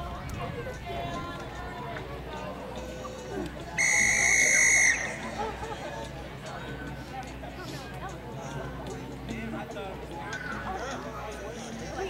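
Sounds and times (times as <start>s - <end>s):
faint voices murmuring: 0.0s - 12.0s.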